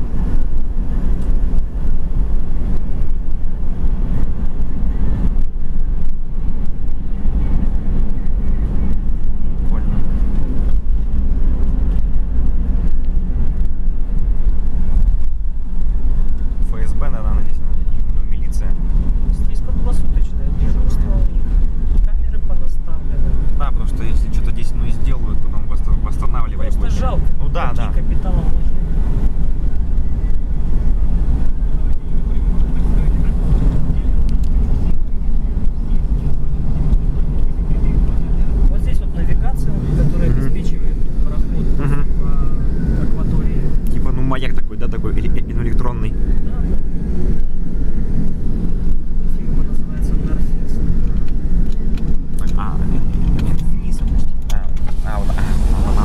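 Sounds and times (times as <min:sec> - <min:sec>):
car engine rumble: 0:00.0 - 0:56.0
tyres on road: 0:00.0 - 0:56.0.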